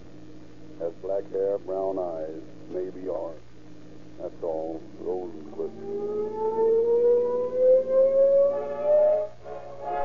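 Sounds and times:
police siren rising tone: 0:05.6 - 0:10.0
brass music: 0:08.4 - 0:10.0.

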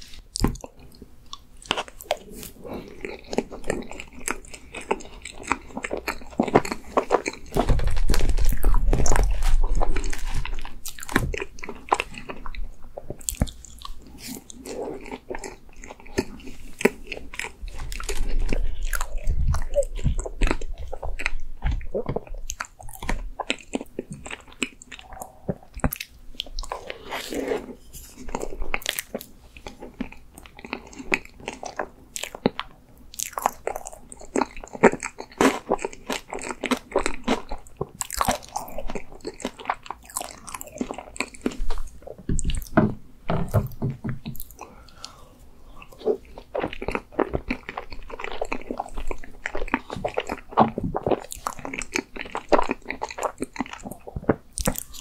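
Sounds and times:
person chewing ice cream cake: 0:00.0 - 0:55.0.

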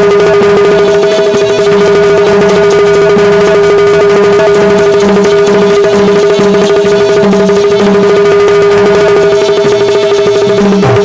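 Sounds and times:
dholak drum beat: 0:00.0 - 0:11.0.

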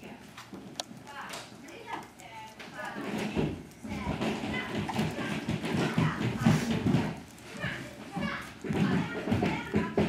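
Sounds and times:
children chattering: 0:01.1 - 0:10.0.

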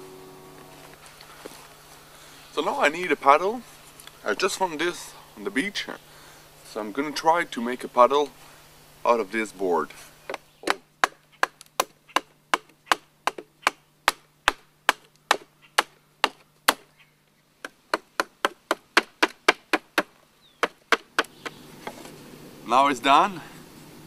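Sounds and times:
blade chopping wooden board: 0:10.3 - 0:16.9, 0:17.6 - 0:22.0.

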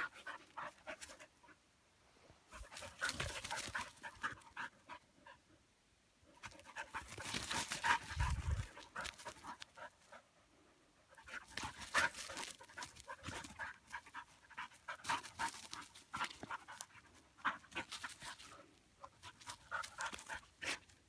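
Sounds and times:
dog panting: 0:02.5 - 0:05.5, 0:06.4 - 0:21.0.

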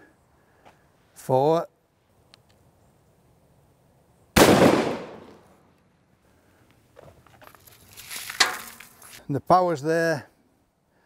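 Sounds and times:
clicks and crunching handling noises: 0:06.6 - 0:09.3.

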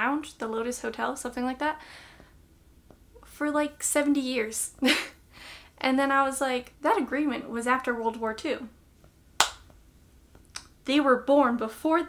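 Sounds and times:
finger snap: 0:09.4 - 0:09.8, 0:10.4 - 0:10.8.

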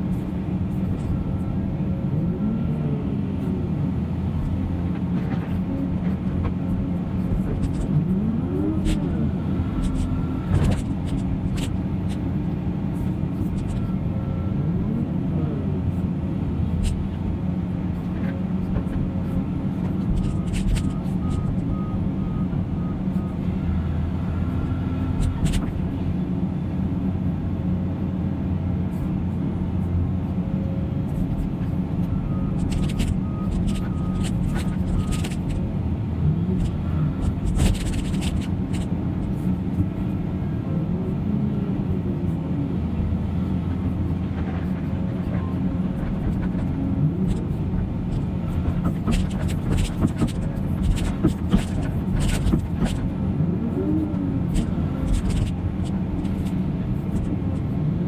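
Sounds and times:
diesel engines running: 0:00.0 - 0:58.0.

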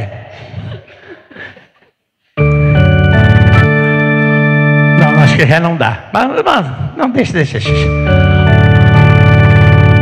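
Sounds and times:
organ keyboard sustained chord: 0:02.4 - 0:06.1, 0:07.2 - 0:10.0.

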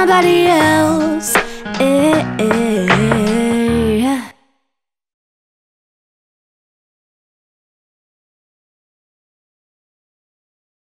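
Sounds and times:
backing track music: 0:00.0 - 0:04.2
woman singing: 0:00.0 - 0:04.5.

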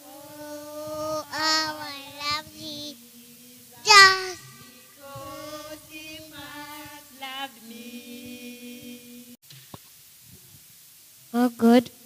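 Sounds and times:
young children singing: 0:00.0 - 0:09.4.

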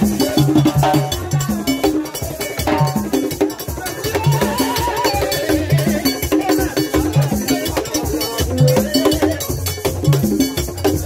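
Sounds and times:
hand drums: 0:00.0 - 0:11.0
struck bell rhythm: 0:00.0 - 0:11.0.

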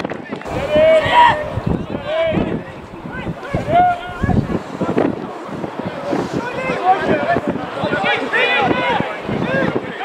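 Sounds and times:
voices calling out: 0:00.0 - 0:10.0
wind rumbling on microphone: 0:00.0 - 0:10.0.

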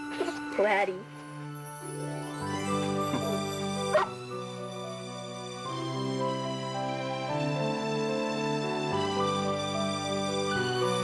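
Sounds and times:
soft background music: 0:00.0 - 0:11.0
puppy yip: 0:03.9 - 0:04.2.

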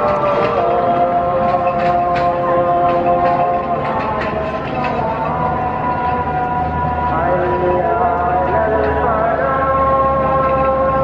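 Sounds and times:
low train rumble: 0:00.0 - 0:11.0
train wheels clicking over track: 0:00.0 - 0:11.0.

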